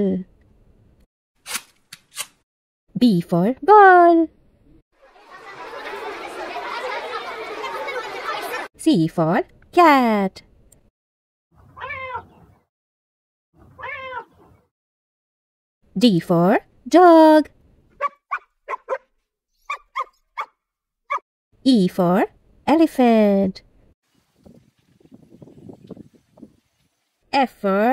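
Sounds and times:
children chattering: 5.0 - 8.7
dog barking: 18.0 - 21.2.

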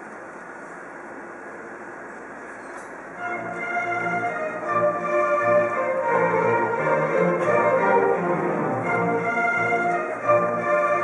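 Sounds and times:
recording hiss: 0.0 - 11.0
room noise: 0.0 - 11.0.

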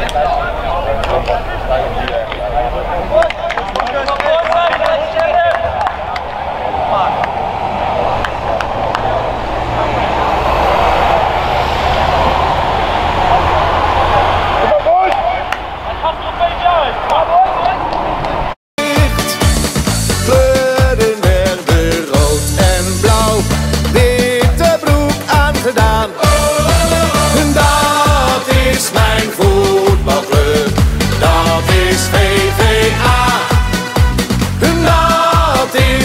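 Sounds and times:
crowd voices talking and calling: 0.0 - 36.0
steady low rumble: 5.5 - 16.1.

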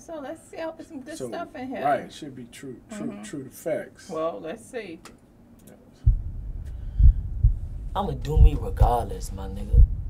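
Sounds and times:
deep heartbeat-like thuds: 6.0 - 10.0
low rumble: 6.1 - 10.0.

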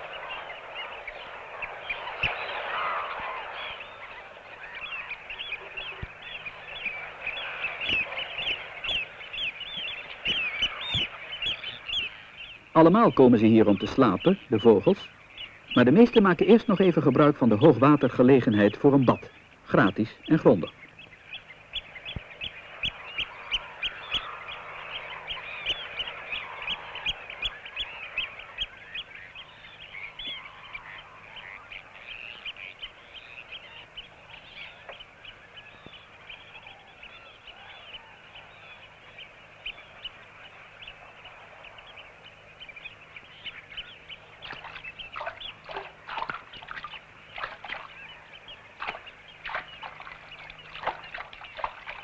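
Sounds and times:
flock of shorebirds calling: 0.0 - 52.0.

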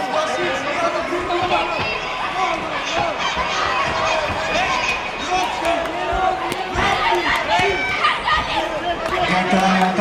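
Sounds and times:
voices shouting: 0.0 - 10.0.

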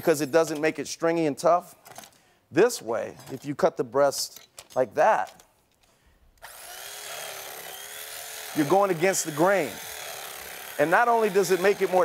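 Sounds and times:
electric carving knife running: 6.4 - 12.0.

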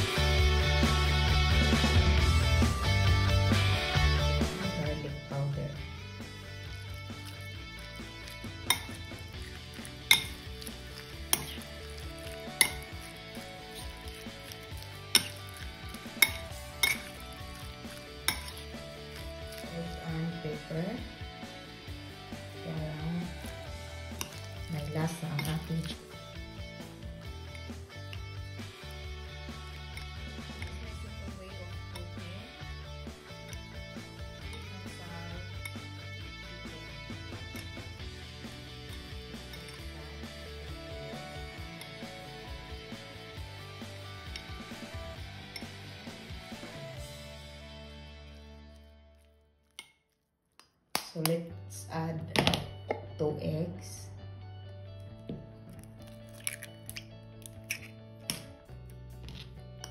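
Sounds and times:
background music: 0.0 - 49.5, 51.0 - 59.9
spoon scraping and stirring: 6.2 - 36.3, 37.4 - 46.8, 55.7 - 58.4, 59.1 - 59.9
spoon clinking on ceramic plate: 8.7 - 13.2, 13.8 - 17.7, 18.3 - 19.6.

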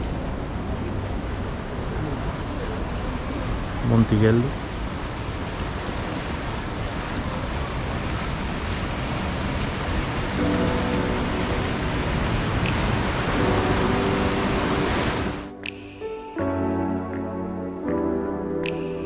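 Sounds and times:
soft music with held notes: 10.3 - 19.0.

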